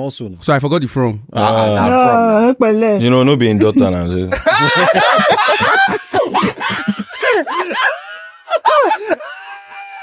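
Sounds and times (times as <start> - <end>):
high-pitched laughter: 4.4 - 10.0.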